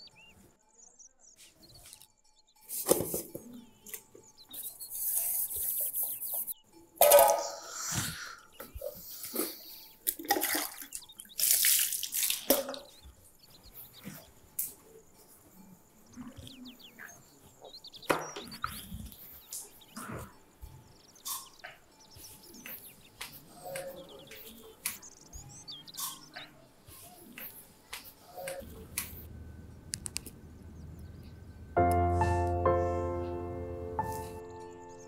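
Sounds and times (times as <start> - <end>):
metal bowls and pots clinking: 7.0 - 7.8
water splashing and pouring: 9.4 - 13.0.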